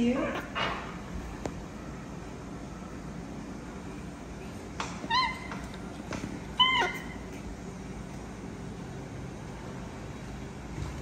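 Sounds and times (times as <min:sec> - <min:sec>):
baby monkey high-pitched calls: 0:05.0 - 0:05.8, 0:06.5 - 0:07.4.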